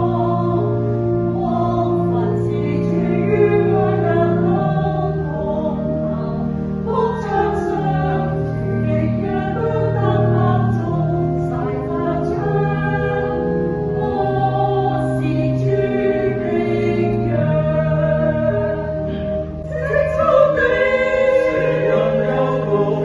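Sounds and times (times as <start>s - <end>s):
choir singing a hymn: 0.0s - 23.0s.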